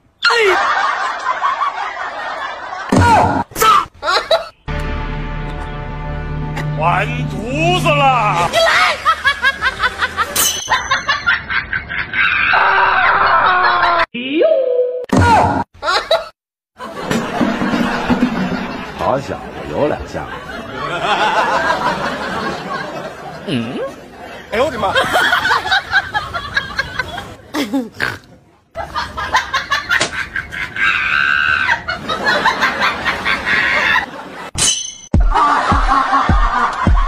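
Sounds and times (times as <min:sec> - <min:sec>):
person laughing: 0:04.0 - 0:04.5, 0:08.4 - 0:14.2, 0:27.1 - 0:28.0, 0:35.3 - 0:37.0.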